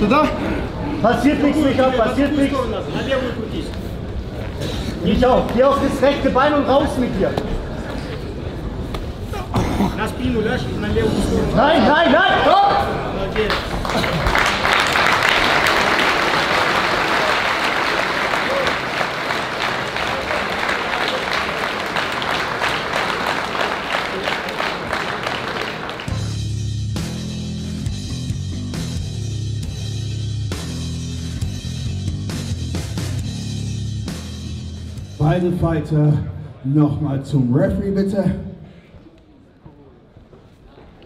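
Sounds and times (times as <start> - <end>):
crowd cheering and applauding: 13.4 - 26.2
loud music with heavy bass: 26.1 - 35.2.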